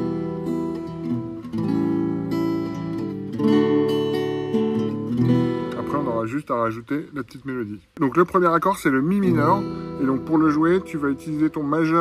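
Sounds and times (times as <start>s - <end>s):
acoustic guitar chords ringing: 0.0s - 6.5s, 8.1s - 12.0s.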